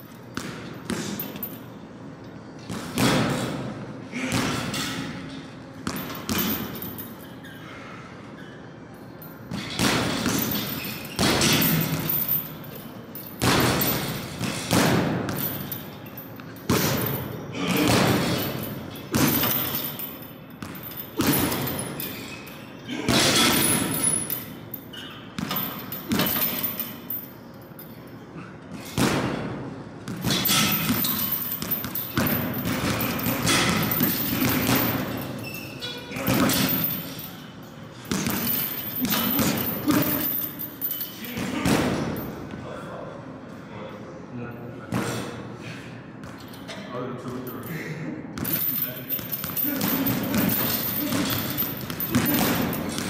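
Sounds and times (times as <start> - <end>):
boxing gloves thudding into punching bags: 2.7 - 5.1, 9.5 - 12.4, 13.4 - 15.8, 16.7 - 20.0, 20.6 - 22.1, 28.8 - 35.4, 38.0 - 40.6, 41.3 - 42.5, 48.4 - 53.0.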